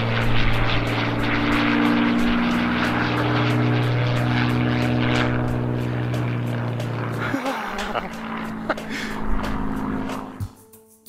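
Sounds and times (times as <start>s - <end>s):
propeller aircraft flying overhead: 0.0s - 11.0s
soft keyboard music: 4.8s - 11.0s.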